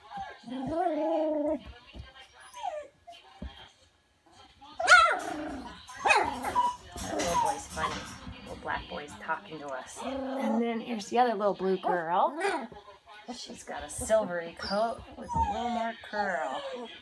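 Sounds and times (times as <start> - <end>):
puppy whining and whimpering: 0.0 - 3.3, 4.8 - 8.0, 14.6 - 17.0.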